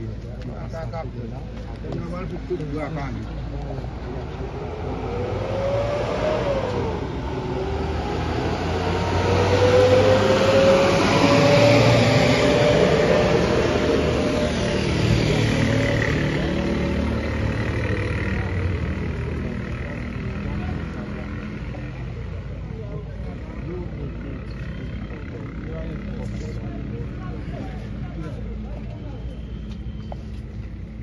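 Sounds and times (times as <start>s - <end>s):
vehicle driving past: 3.7s - 22.4s.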